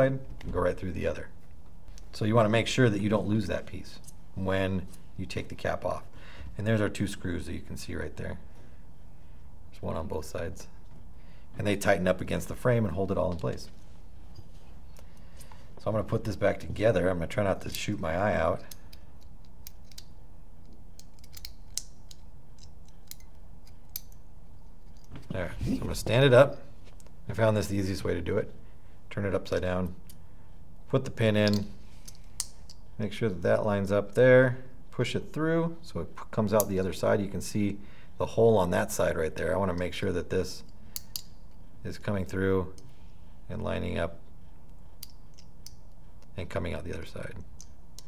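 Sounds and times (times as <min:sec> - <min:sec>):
steady low hum: 0:00.0 - 0:48.0
small metal clicks and taps: 0:18.6 - 0:24.2, 0:40.9 - 0:41.6.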